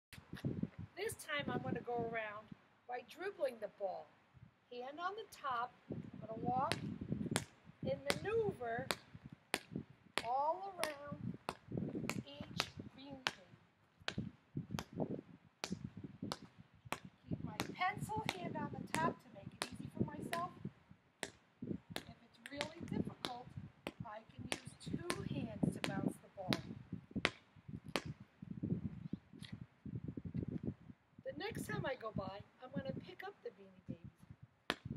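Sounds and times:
basketball dribbling on asphalt: 6.7 - 13.4, 14.0 - 20.5, 21.2 - 28.2, 34.7 - 34.9.

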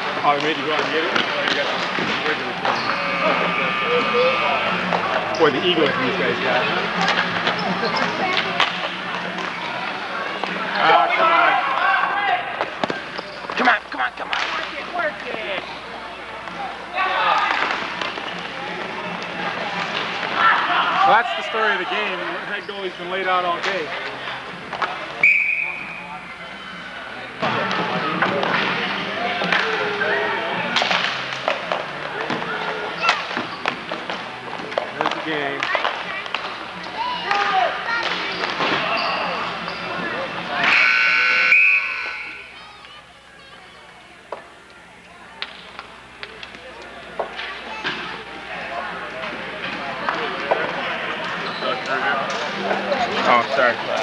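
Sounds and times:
people shouting: 20.4 - 21.8
high-pitched whistle blast: 25.2 - 26.0, 40.7 - 42.5
hockey sticks and ball knocking: 30.7 - 38.9.

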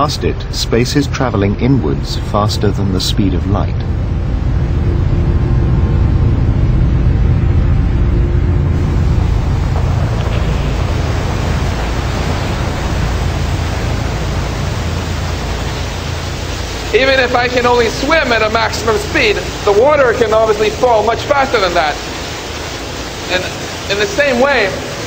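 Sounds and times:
faint steady tones: 0.0 - 25.0
waterfall rushing: 3.8 - 25.0.

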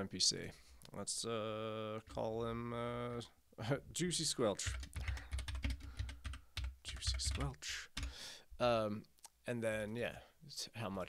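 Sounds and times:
typing on computer keyboard: 4.6 - 8.2.

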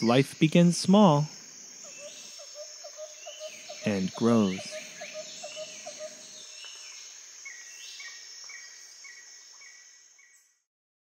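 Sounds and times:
insect trill: 0.0 - 10.6
gliding bird-like calls: 1.8 - 10.4
short chirping calls: 1.8 - 10.5.

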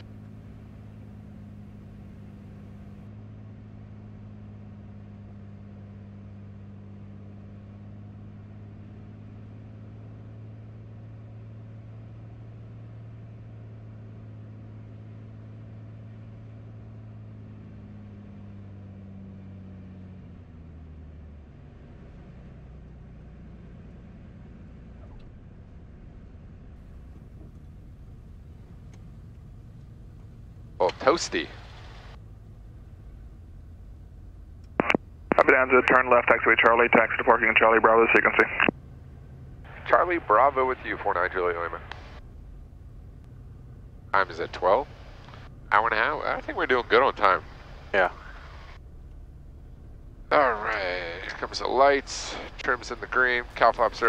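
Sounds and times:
propeller plane engine drone: 0.0 - 54.0.

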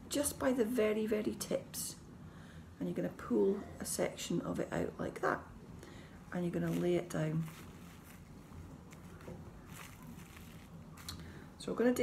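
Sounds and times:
low steady room hum: 0.0 - 12.0
soft rustling of wool fleece: 5.9 - 12.0
light brushing: 6.2 - 11.6.

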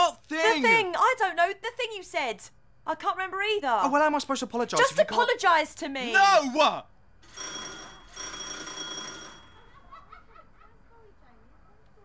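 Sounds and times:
electric doorbell ringing: 7.3 - 9.7.

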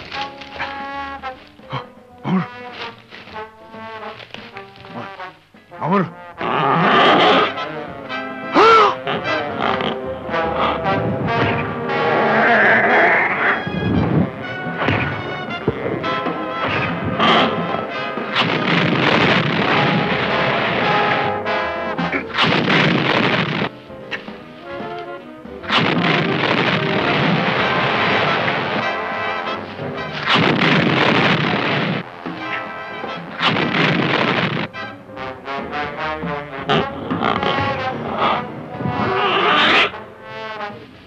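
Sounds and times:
soundtrack music: 0.0 - 40.9
rough effects noise blasts: 9.6 - 23.8, 25.6 - 32.4, 33.3 - 34.8.

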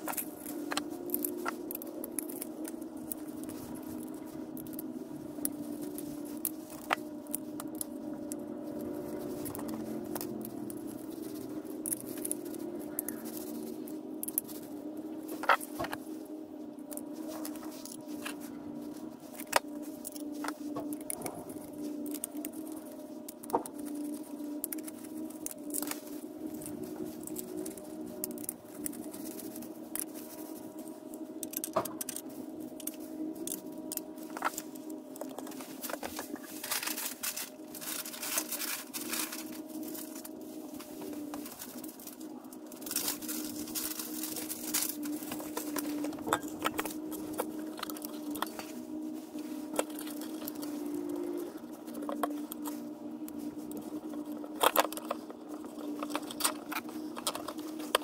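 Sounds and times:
hands handling small fan parts: 0.0 - 58.0
low hum: 0.0 - 58.0.

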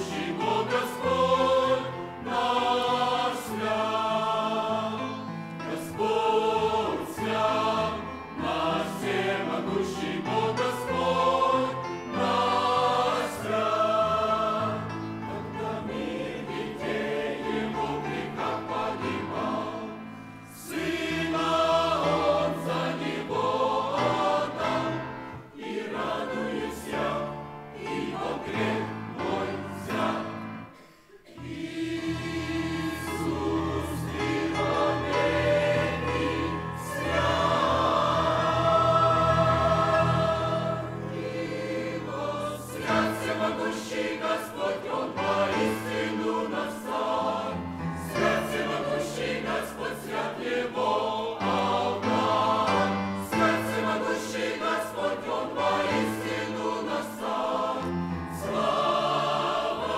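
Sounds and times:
choir singing a hymn: 0.0 - 59.9
singers breathing: 30.7 - 31.4.

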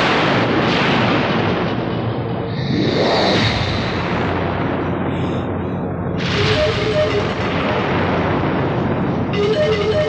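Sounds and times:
explosion boom and rumble: 0.0 - 10.0.

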